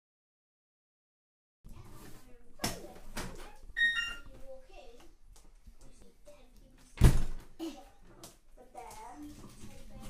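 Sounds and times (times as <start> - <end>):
child's voice: 4.2 - 5.2, 5.8 - 7.0, 7.6 - 10.0.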